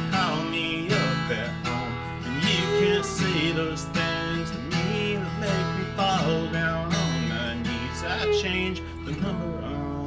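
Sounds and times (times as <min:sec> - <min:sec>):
acoustic guitar strumming: 0:00.0 - 0:10.0
fiddle sliding bowed notes: 0:01.8 - 0:10.0.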